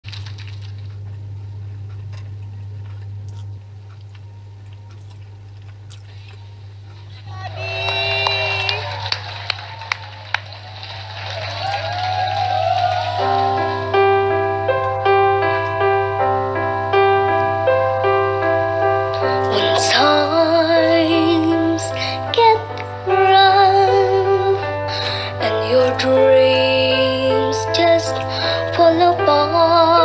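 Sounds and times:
piano: 0.1 - 30.0
crowd voices: 7.1 - 17.3.

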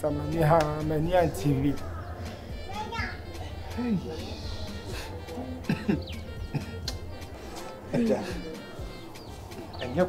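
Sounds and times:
faint background voices: 0.0 - 10.0
low steady music: 0.0 - 10.0.

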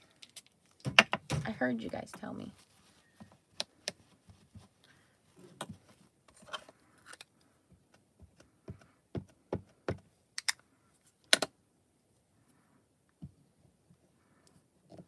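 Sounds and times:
handling rustles: 1.6 - 7.2.

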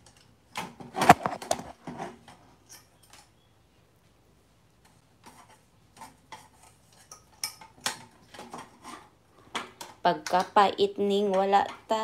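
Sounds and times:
metal utensils and dishes clinking: 5.4 - 9.2.

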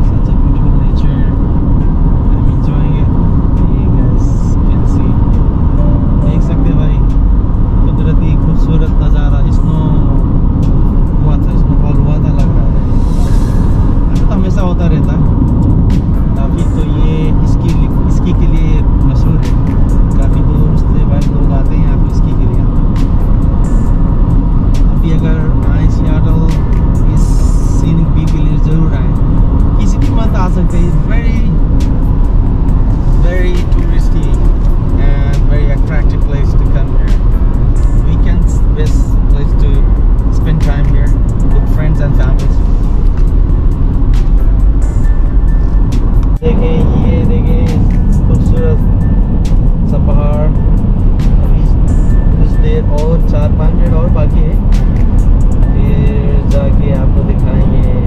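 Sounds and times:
car road and engine rumble: 0.0 - 58.0.

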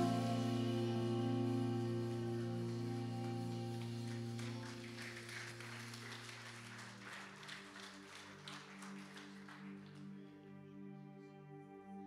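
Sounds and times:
soft keyboard pad chords: 0.0 - 7.4, 9.7 - 12.0
scattered applause: 1.6 - 10.5.

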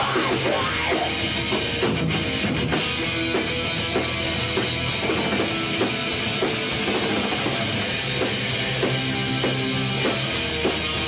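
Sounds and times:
drum kit steady beat: 0.0 - 11.0
electric bass: 0.0 - 11.0
electric guitars: 0.0 - 11.0.

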